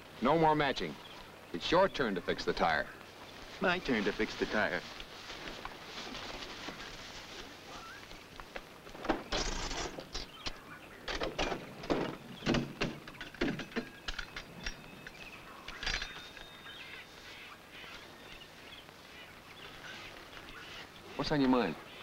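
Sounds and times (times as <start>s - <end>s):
metallic knocks and clanks: 11.1s - 14.8s.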